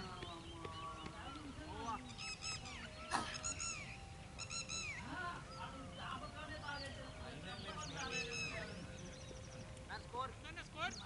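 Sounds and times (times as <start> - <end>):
birds calling: 0.0 - 11.0.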